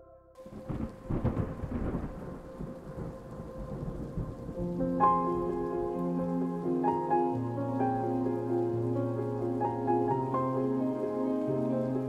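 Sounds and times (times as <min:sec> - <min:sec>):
music with sustained notes: 0:00.0 - 0:12.0
rain: 0:00.4 - 0:12.0
thunder rumble: 0:00.4 - 0:12.0.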